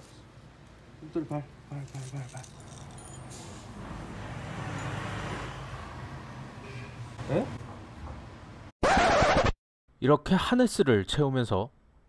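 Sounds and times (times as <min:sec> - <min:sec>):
outdoor background noise: 0:00.0 - 0:09.6
record scratch effect: 0:08.8 - 0:09.6.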